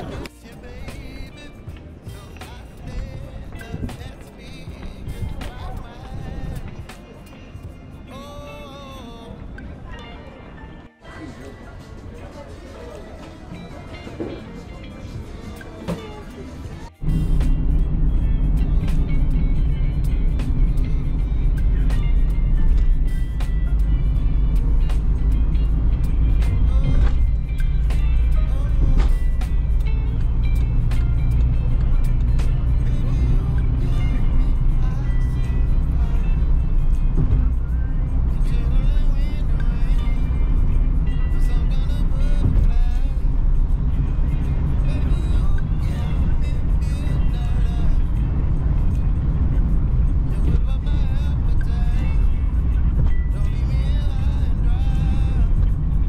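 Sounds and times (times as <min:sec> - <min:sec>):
car engine and road rumble: 0:00.0 - 0:10.6, 0:15.2 - 0:56.0
music: 0:00.0 - 0:56.0.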